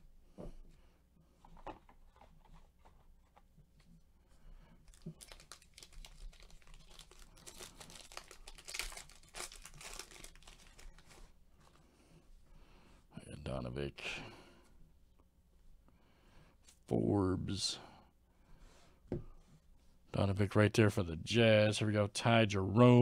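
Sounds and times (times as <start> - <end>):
foil wrapper crinkling and tearing: 4.8 - 11.3.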